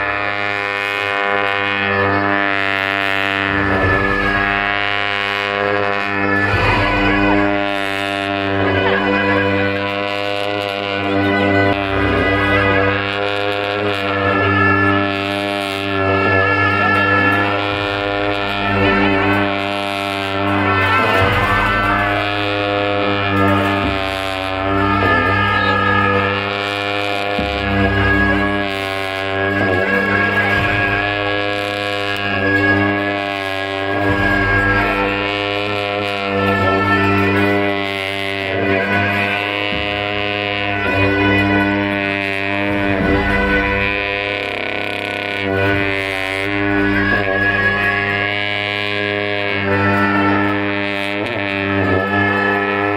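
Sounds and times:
low horn drone: 0.0s - 52.9s
percussion crashes: 3.5s - 9.8s, 16.2s - 37.8s, 38.6s - 48.2s
shawms playing ornamented melody: 16.2s - 32.9s, 34.0s - 47.9s.

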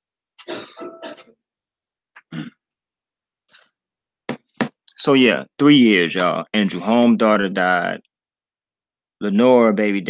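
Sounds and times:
person coughing: 0.4s - 1.3s, 2.2s - 2.6s.

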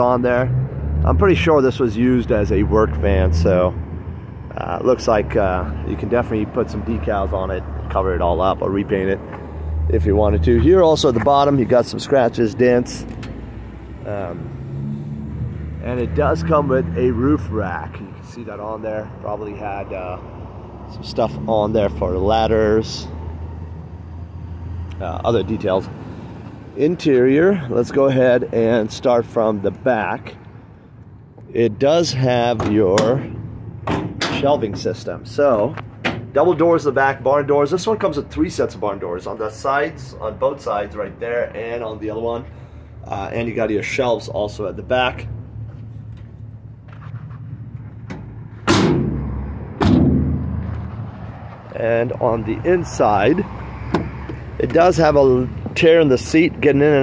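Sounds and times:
van cargo doors slamming: 33.3s - 34.6s, 48.1s - 50.7s.

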